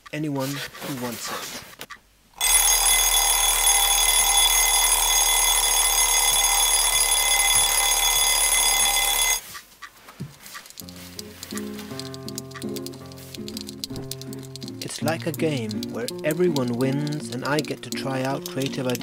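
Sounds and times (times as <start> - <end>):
alarm clock ringing: 2.4 - 9.4
soft simple melody music: 10.8 - 19.0.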